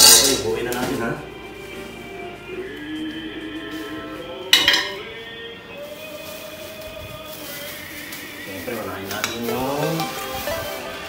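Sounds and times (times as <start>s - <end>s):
metal chair base clanking on tiles: 0.0s - 1.0s, 4.5s - 5.1s.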